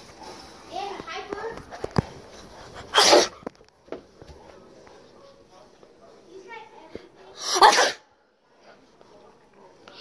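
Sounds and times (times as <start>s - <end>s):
sneeze into hand: 2.9s - 3.4s, 7.4s - 8.0s.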